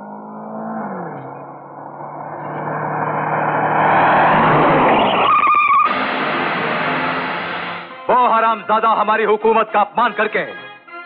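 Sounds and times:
car approaching: 0.0 - 8.1.

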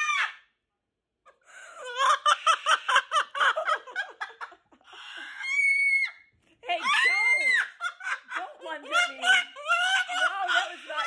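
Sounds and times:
cockatoo screaming: 0.0 - 0.4, 5.1 - 6.2.

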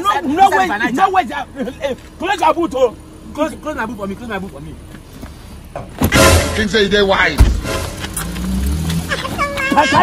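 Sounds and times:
car engine rumbling: 0.0 - 10.0
man calling out: 9.4 - 10.0.

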